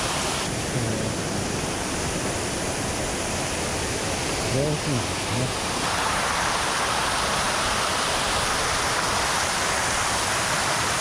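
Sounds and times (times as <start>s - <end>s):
waterfall into shallow pool: 0.0s - 11.0s.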